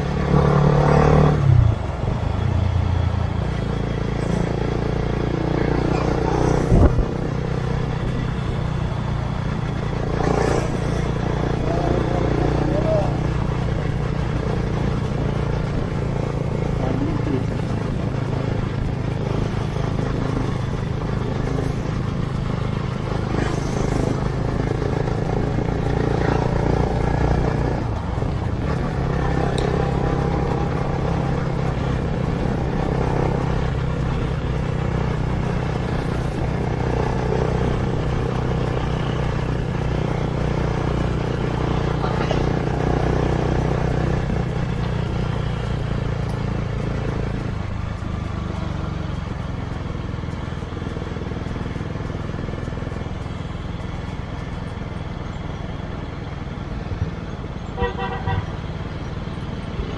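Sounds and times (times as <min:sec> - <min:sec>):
motorcycle engine running: 0:00.0 - 0:59.9
wind and road noise: 0:00.0 - 0:59.9
short horn toots: 0:57.8 - 0:58.5.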